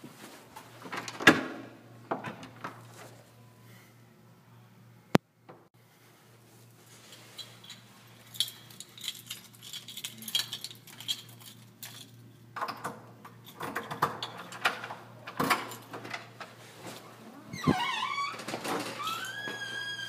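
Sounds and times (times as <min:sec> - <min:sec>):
backpack jangling and clicking: 0:07.1 - 0:12.2.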